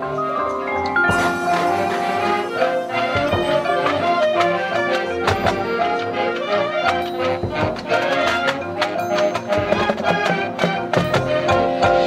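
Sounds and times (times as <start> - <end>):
percussion strikes: 0.5 - 12.0
brass chords: 1.0 - 12.0.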